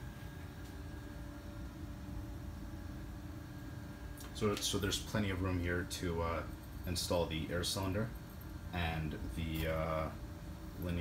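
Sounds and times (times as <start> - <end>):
faint hum tones: 0.0 - 11.0
low rumble and hiss: 0.0 - 11.0.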